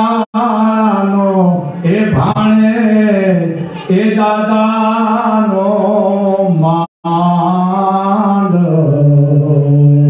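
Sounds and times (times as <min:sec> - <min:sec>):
man chanting through microphone: 0:00.0 - 0:10.0.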